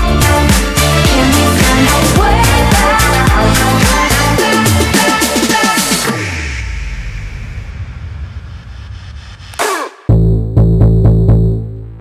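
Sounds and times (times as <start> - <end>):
low bass rumble: 6.5 - 12.0.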